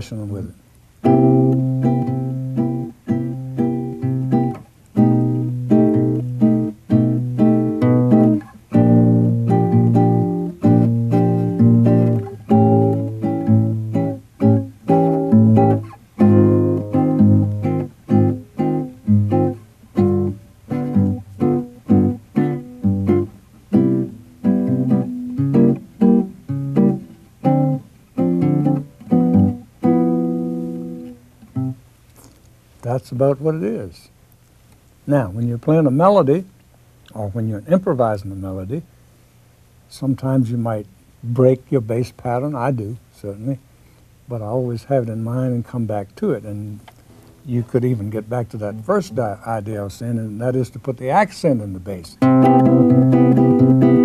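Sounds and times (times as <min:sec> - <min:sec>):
fingerpicked classical guitar: 0:01.0 - 0:33.0, 0:44.4 - 0:54.0.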